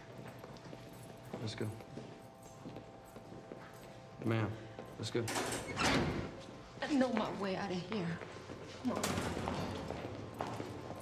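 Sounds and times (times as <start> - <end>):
faint footsteps on hard floor: 0.0 - 5.0, 6.4 - 11.0.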